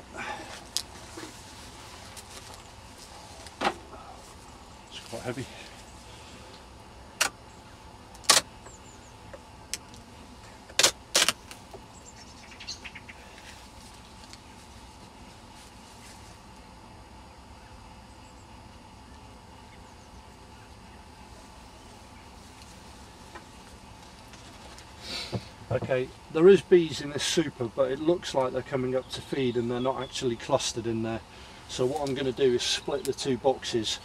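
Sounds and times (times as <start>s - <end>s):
hive tool prising wire cracks: 8.2s - 8.5s, 10.7s - 11.6s.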